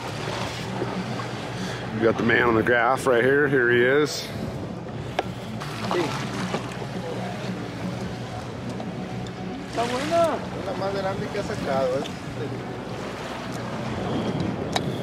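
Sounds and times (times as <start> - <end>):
boat engine humming: 0.0 - 15.0
water noise: 0.0 - 15.0
wind: 0.0 - 15.0.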